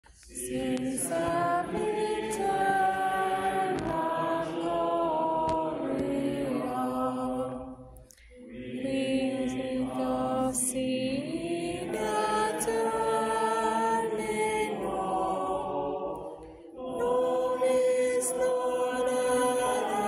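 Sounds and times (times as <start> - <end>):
voices singing sacred chant: 0.1 - 20.0.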